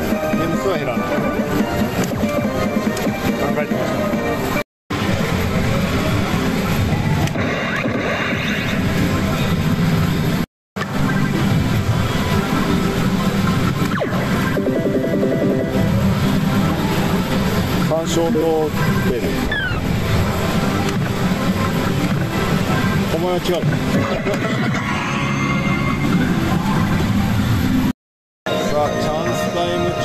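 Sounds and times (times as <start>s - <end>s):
slot machines music and effects: 0.0s - 5.3s, 10.8s - 27.6s, 28.5s - 30.0s.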